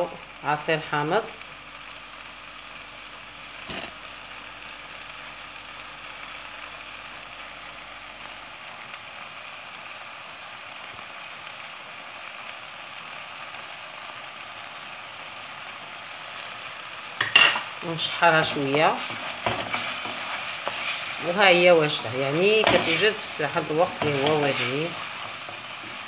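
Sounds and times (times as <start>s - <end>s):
greens sizzling in oil: 0.0s - 26.0s.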